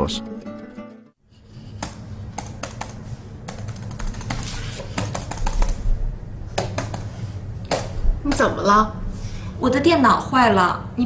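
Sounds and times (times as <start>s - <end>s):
low room hum: 1.2s - 11.0s
laptop keyboard typing: 1.8s - 5.9s.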